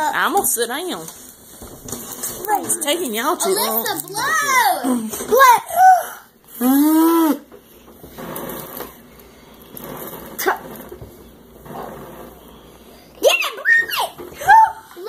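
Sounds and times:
child speaking: 2.4s - 6.2s, 13.2s - 15.0s.

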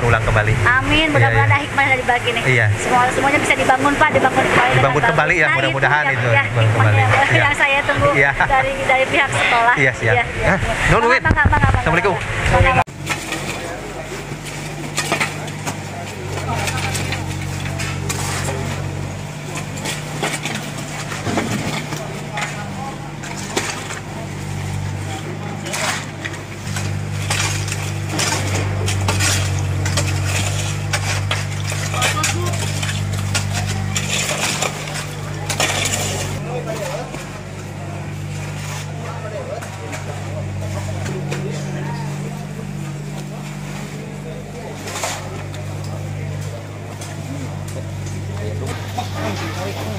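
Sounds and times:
low engine hum: 0.0s - 49.9s
people talking: 0.0s - 49.9s
shovels scraping in mud and stones: 13.0s - 49.9s.

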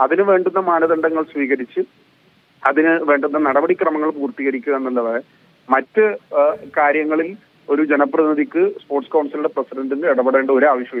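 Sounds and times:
man talking over telephone: 0.0s - 1.9s, 2.6s - 11.0s.

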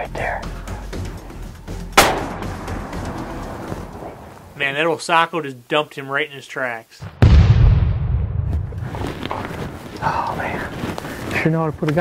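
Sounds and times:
rifle shot: 2.0s - 4.3s.

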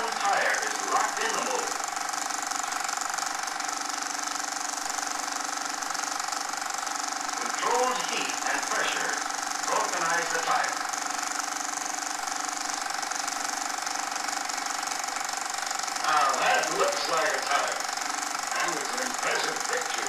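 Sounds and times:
film soundtrack hum and hiss: 0.0s - 1.8s, 7.4s - 10.9s, 16.0s - 20.0s
indistinct voices: 7.4s - 10.8s, 16.0s - 17.8s, 18.5s - 20.0s.

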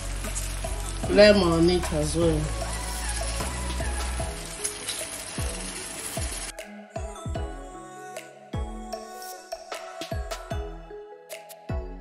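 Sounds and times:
onions sizzling in a pan: 0.0s - 6.5s
background music with bass notes: 0.0s - 12.0s.

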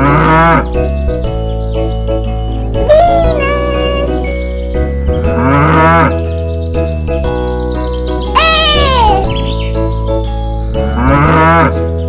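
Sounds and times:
cow mooing: 0.0s - 0.7s, 5.4s - 6.1s, 11.0s - 11.8s
children's song music: 0.0s - 12.0s.

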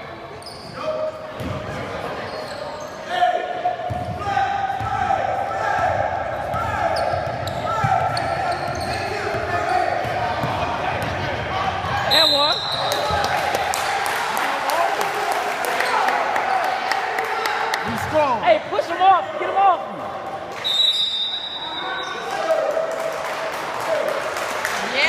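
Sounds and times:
spectators shouting and cheering: 3.1s - 25.0s.

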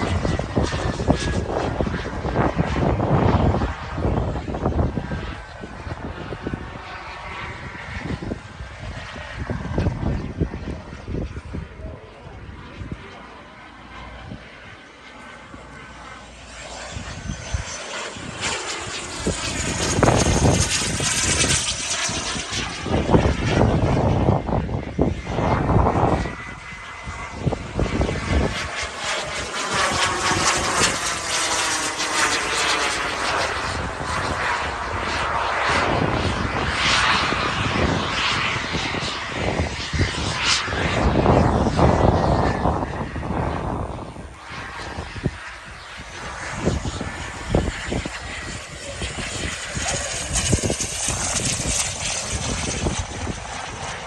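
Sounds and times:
model jet turbine whine: 0.0s - 54.0s.

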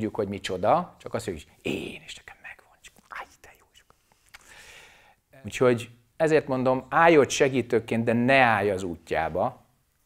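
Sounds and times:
mouth clicks: 2.8s - 4.6s.

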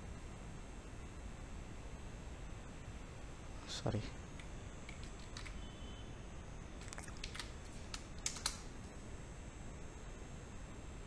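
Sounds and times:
computer keyboard keystrokes: 4.4s - 5.6s, 6.8s - 8.7s.

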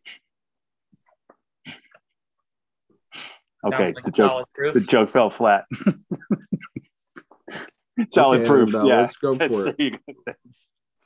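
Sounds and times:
people chuckling: 5.6s - 7.6s, 9.4s - 10.7s.

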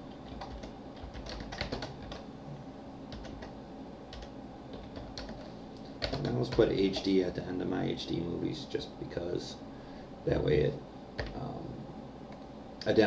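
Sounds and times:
computer keyboard typing: 0.0s - 2.2s, 3.1s - 7.2s, 11.2s - 11.4s.

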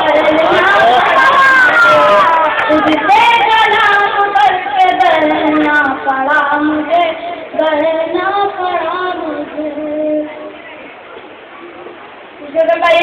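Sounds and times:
boy singing: 0.0s - 10.5s, 12.4s - 13.0s.

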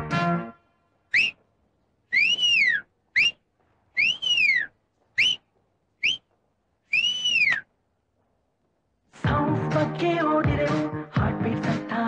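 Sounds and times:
person whistling through fingers: 1.1s - 1.4s, 2.1s - 3.4s, 4.0s - 5.4s, 6.0s - 6.3s, 6.9s - 7.7s.

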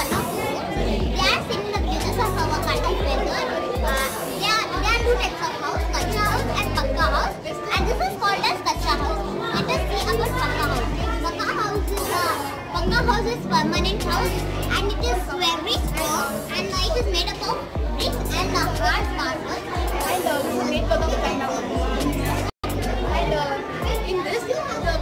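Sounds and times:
music with heavy bass: 0.0s - 5.2s, 5.8s - 8.0s, 8.8s - 19.2s, 19.8s - 23.3s
children talking: 0.0s - 25.0s.

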